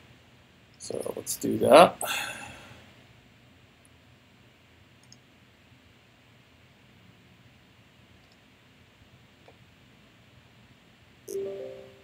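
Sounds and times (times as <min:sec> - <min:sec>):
alert chime: 0:11.3 - 0:12.0.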